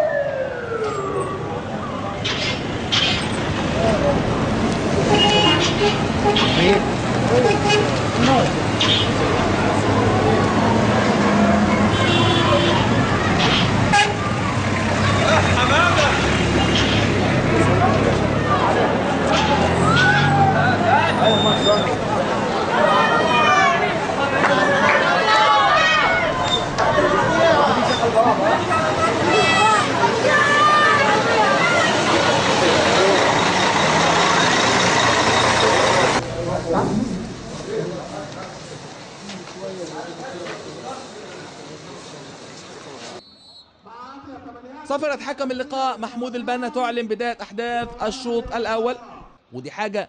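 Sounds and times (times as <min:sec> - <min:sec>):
street traffic: 0:00.0 - 0:50.0
bus engine running: 0:02.2 - 0:43.2
people's voices and shouts: 0:05.0 - 0:42.4
vehicle horn toot: 0:05.1 - 0:06.7, 0:11.9 - 0:12.9, 0:13.9 - 0:14.2.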